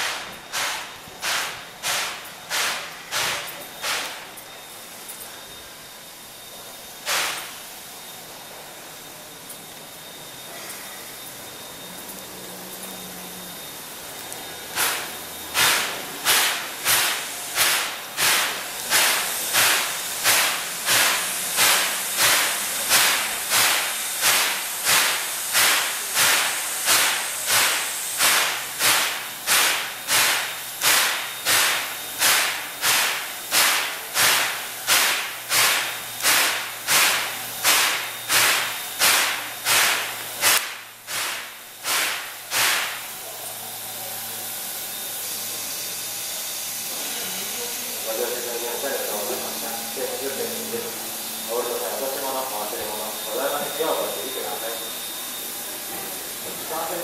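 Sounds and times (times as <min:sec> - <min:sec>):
steady steam hiss: 0:00.0 - 0:57.0
steam locomotive hissing beats: 0:00.0 - 0:57.0.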